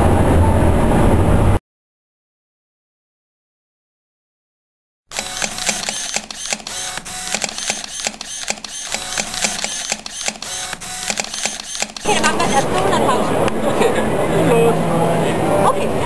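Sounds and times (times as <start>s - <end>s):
camera shutters clicking rapidly: 5.1s - 12.6s.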